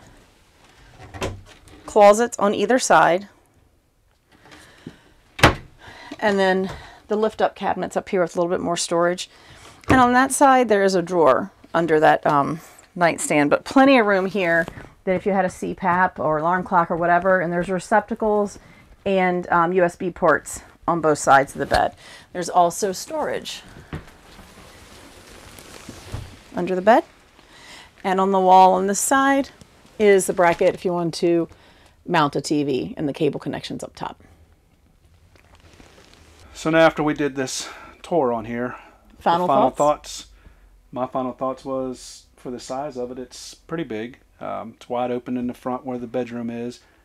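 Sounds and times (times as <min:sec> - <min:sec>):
cabinet door thump: 0:05.4 - 0:05.7
bedspread rustling: 0:14.0 - 0:15.6, 0:22.6 - 0:30.7, 0:35.5 - 0:36.9.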